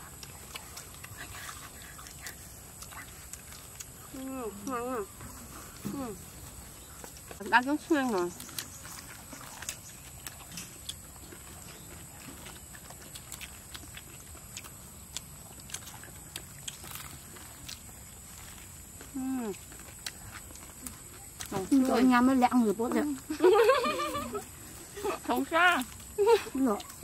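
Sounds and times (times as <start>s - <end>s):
crunching and chewing: 0.0s - 27.0s.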